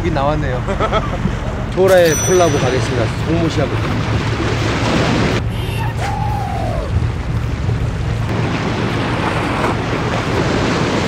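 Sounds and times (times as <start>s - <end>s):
wind buffeting microphone: 1.2s - 11.0s
sea waves breaking on rocks: 2.1s - 5.5s, 7.0s - 11.0s.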